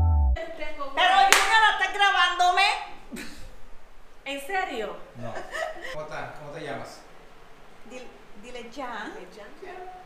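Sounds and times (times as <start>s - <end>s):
sharp hand clap: 1.3s - 1.6s.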